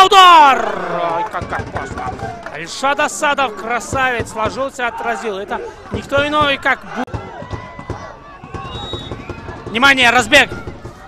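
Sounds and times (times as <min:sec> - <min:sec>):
dull thumps: 0:05.9 - 0:11.0.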